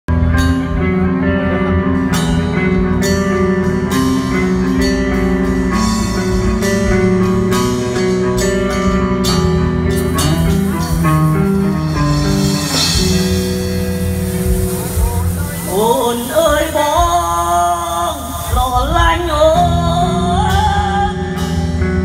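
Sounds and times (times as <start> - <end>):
electric guitar melody: 0.1 - 22.0
keyboards: 0.1 - 22.0
drum kit steady beat: 1.9 - 22.0.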